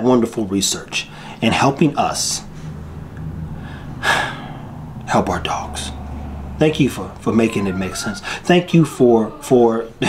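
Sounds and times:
low steady hum: 0.0 - 10.0
man breathing in sharply: 3.6 - 4.8, 8.2 - 8.5.

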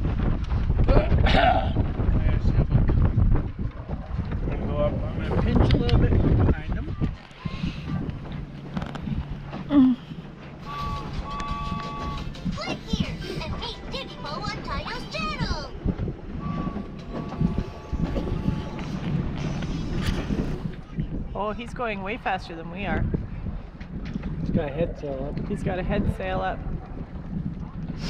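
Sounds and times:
low steady hum: 7.0 - 23.3.

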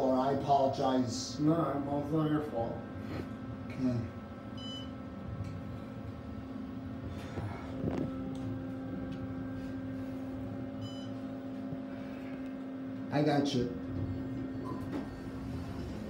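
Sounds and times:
elevator car humming: 4.2 - 16.0.

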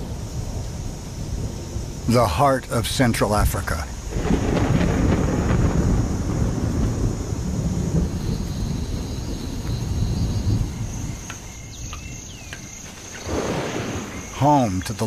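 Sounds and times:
rolling thunder: 0.0 - 14.6
high insect drone: 0.0 - 15.0.

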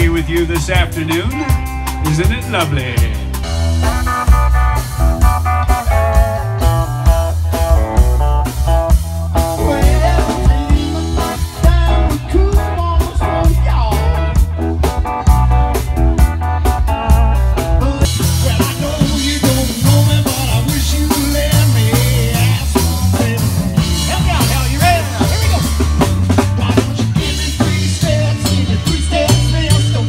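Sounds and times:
live band playing upbeat song: 0.0 - 30.0.

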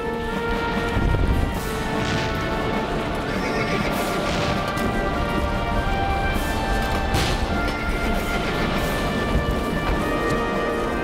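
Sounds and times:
music of long held notes: 0.0 - 11.0
horse whinnying: 3.2 - 4.2.

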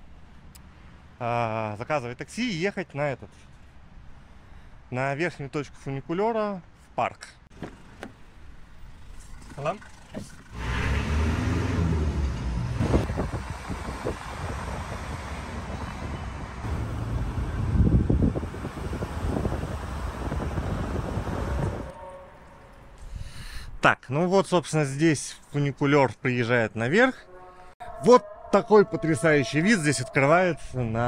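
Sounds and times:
car engine and road noise: 7.5 - 23.0.

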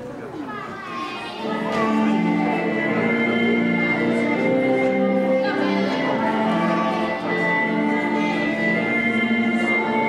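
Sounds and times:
voices echoing in a gym: 0.0 - 10.0
music over speakers: 1.4 - 10.0.

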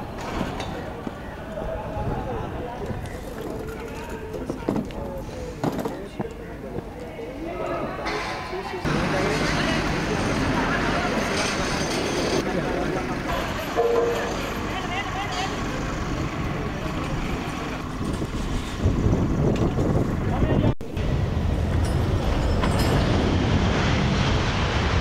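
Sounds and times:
people talking: 0.5 - 17.8
steady engine noise: 8.9 - 25.0.

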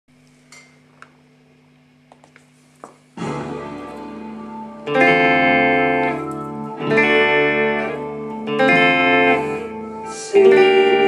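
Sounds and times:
guitar amp hum: 0.1 - 11.0
electric guitar chord ringing: 3.2 - 11.0.

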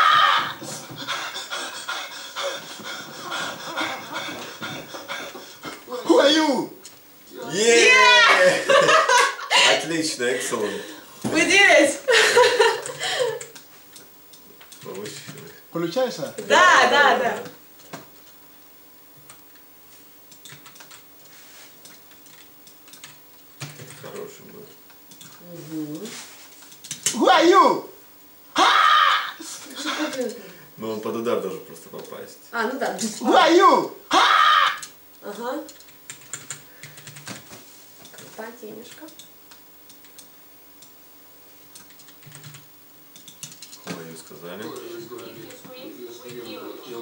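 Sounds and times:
faint electrical hum: 0.0 - 47.0
woman panting: 0.6 - 6.1
keyboard typing clicks: 20.3 - 21.0, 21.8 - 24.3, 41.7 - 43.8.

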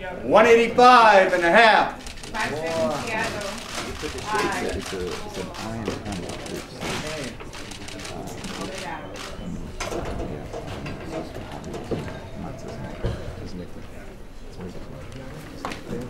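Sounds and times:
voices chattering: 0.0 - 16.0.

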